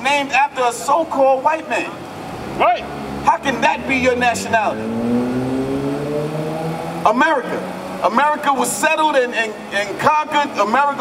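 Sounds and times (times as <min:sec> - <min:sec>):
car engine accelerating: 0:02.0 - 0:09.7.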